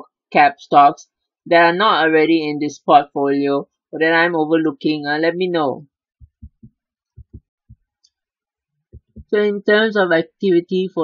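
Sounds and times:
soft low thumps: 6.2 - 7.9, 8.9 - 9.4.

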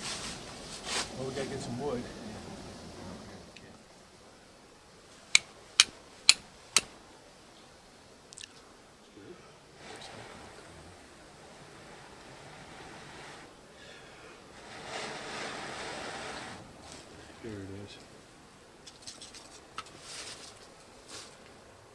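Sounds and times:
flint striking steel: 5.3 - 7.0
breath blowing on tinder: 9.6 - 17.4.

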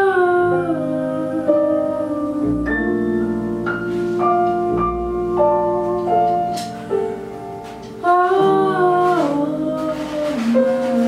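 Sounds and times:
piano accompaniment: 0.0 - 11.0
woman singing jazz: 0.0 - 11.0.

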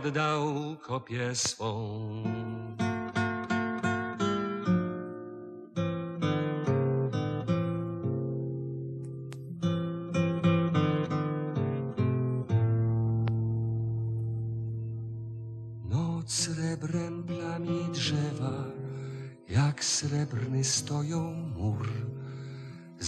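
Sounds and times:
acoustic guitar playing: 0.0 - 1.3, 1.9 - 23.0.

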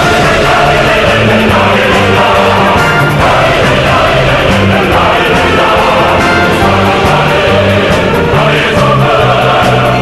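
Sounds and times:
choir singing: 0.0 - 10.0
instrumental accompaniment: 0.0 - 10.0.

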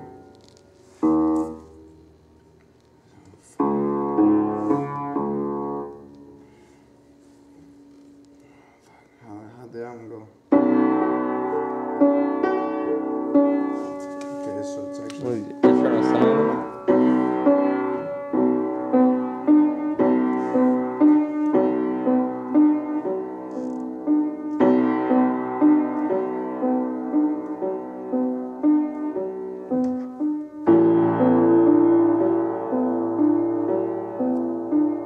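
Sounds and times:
upright piano chords: 0.0 - 35.0.

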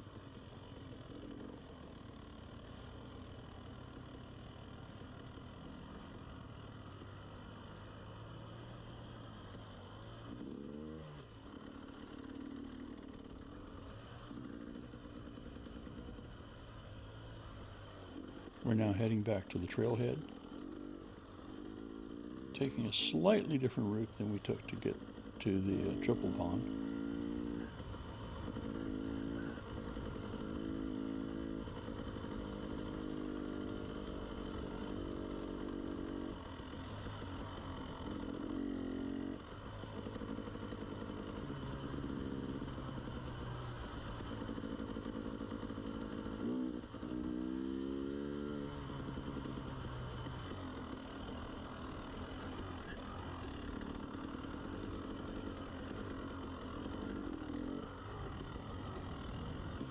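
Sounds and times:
dirt bike engine revving: 4.8 - 59.9.

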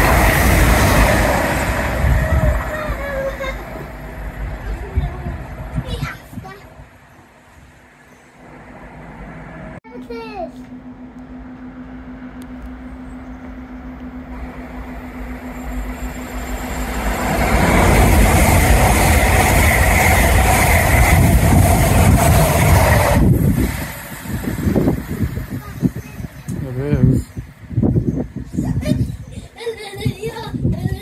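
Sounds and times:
steady whine: 0.0 - 28.6
train passing: 0.0 - 31.0.

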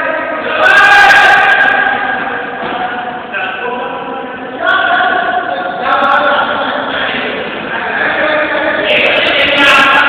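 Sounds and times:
people calling out together: 0.0 - 10.0.

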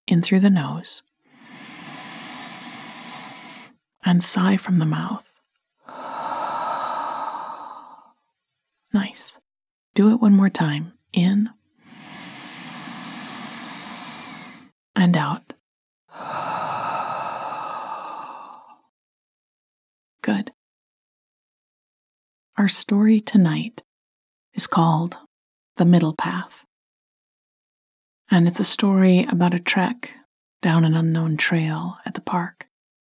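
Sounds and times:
woman breathing in through nose: 1.2 - 3.8, 5.8 - 8.2, 11.8 - 14.8, 16.1 - 18.9
woman sighing: 5.9 - 8.1, 16.2 - 18.7.

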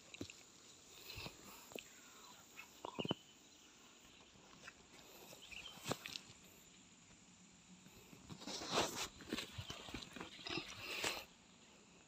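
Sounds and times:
leaves and twigs rustling: 8.3 - 11.2.

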